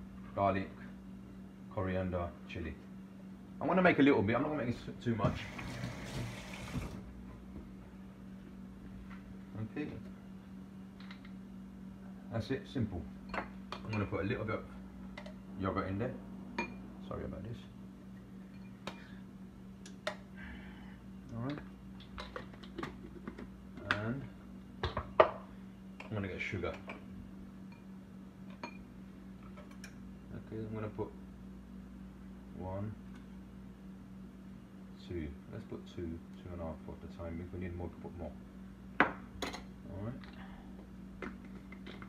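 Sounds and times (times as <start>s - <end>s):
steady low hum: 0.0s - 42.0s
water running from a tap: 5.3s - 7.0s.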